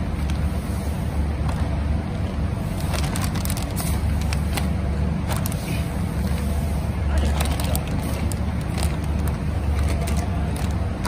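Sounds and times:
machinery humming: 0:00.0 - 0:11.0
plastic bag crinkling: 0:02.8 - 0:05.7, 0:07.2 - 0:11.0.

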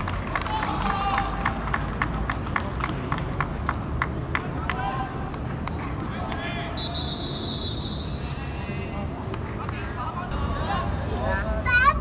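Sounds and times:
rapid sharp claps: 0:00.0 - 0:06.5
people shouting: 0:00.4 - 0:01.5.

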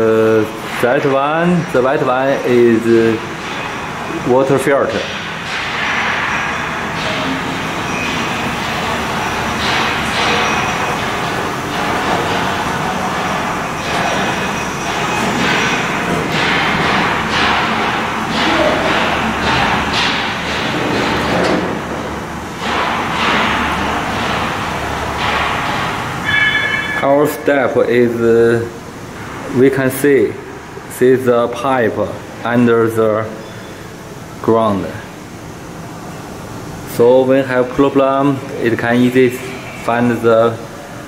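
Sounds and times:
steady mechanical hum: 0:00.0 - 0:41.0.

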